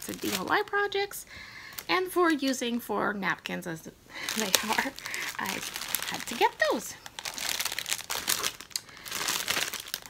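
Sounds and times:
plastic packaging crinkling: 0.0 - 2.6, 4.2 - 10.0.

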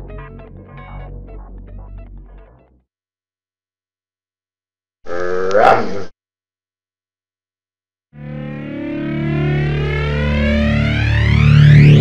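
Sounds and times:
rising logo sound effect: 8.2 - 12.0.

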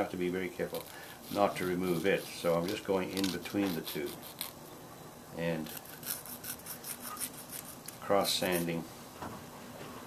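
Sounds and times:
sanding stick rubbing plastic: 0.7 - 4.5, 5.7 - 7.8.

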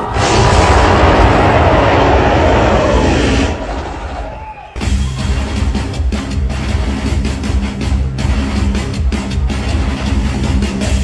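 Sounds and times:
loud rush of noise: 0.0 - 4.8
band music: 4.8 - 11.0.

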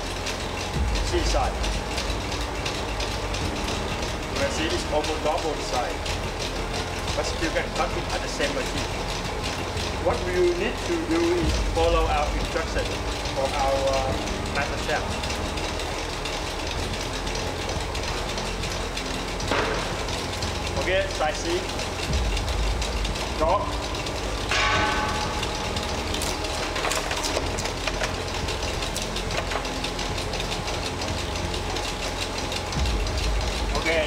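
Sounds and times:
machinery humming: 0.0 - 34.0
rapid fine gear clicking: 0.0 - 34.0
cutting machine humming: 21.6 - 34.0.

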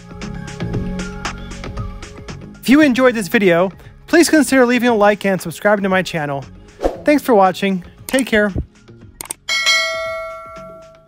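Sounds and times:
quick clicks: 8.1 - 8.3.

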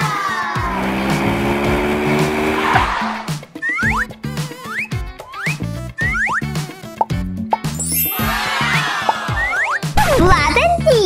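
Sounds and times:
racing car engine: 0.0 - 3.4
cheerful children's music: 3.3 - 11.0.

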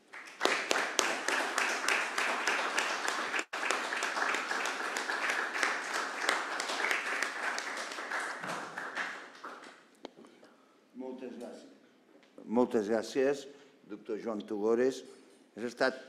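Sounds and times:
audience applauding: 0.0 - 9.8.

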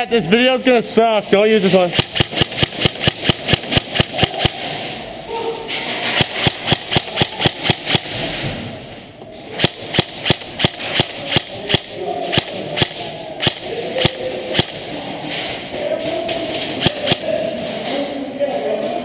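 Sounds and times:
airsoft guns firing: 1.8 - 5.0, 6.0 - 8.6, 9.5 - 15.6, 16.6 - 17.4.

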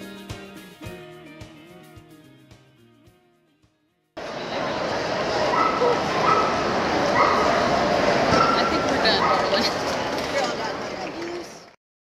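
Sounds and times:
crowd chatter: 4.2 - 11.8
dogs yipping and whining: 5.5 - 7.7.

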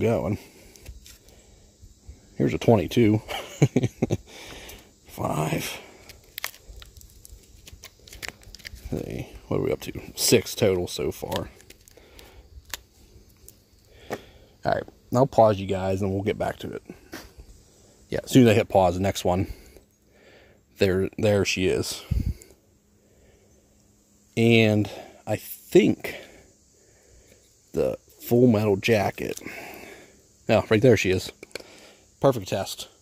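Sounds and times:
faint outdoor background: 0.0 - 33.0
wood fibres cracking: 5.9 - 9.2, 10.7 - 14.2.

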